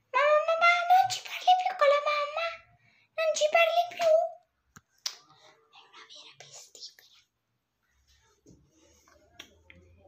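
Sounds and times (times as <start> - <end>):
person whispering: 5.2 - 7.4.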